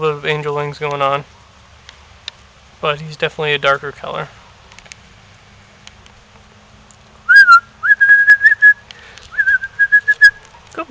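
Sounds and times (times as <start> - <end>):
person whistling short warbling notes: 7.3 - 8.8, 9.4 - 10.4.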